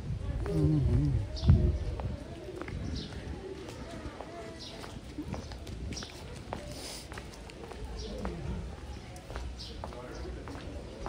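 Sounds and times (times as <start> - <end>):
footsteps on wet brick: 1.9 - 11.0.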